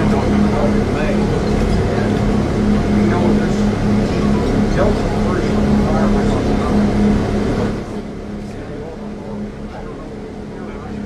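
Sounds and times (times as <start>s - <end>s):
bus engine droning: 0.0s - 11.0s.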